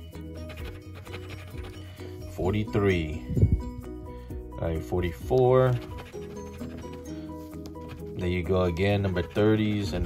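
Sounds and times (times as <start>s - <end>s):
background music with held notes: 0.0s - 10.0s
coin scratching lottery ticket: 0.2s - 2.0s, 5.7s - 10.0s.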